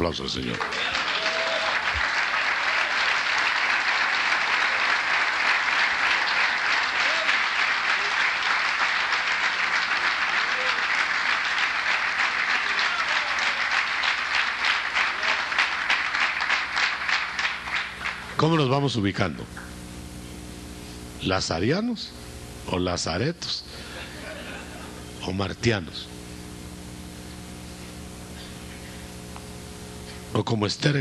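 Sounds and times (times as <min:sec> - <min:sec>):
crowd applauding: 0:00.4 - 0:18.4.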